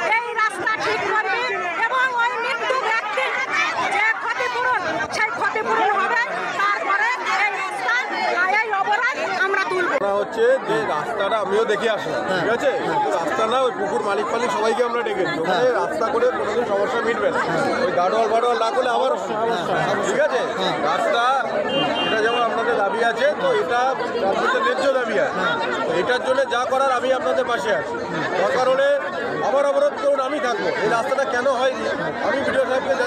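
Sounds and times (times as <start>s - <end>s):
crowd chatter: 0.0s - 33.0s.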